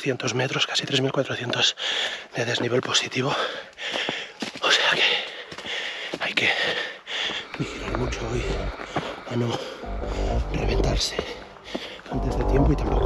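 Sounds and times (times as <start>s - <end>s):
runner breathing hard: 1.7s - 2.4s, 3.2s - 10.5s, 11.2s - 12.1s.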